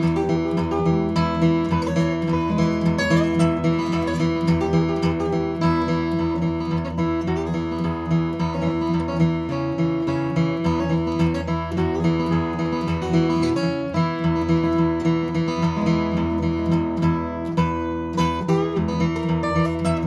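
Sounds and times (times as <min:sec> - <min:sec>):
fingerstyle acoustic guitar: 0:00.0 - 0:20.0.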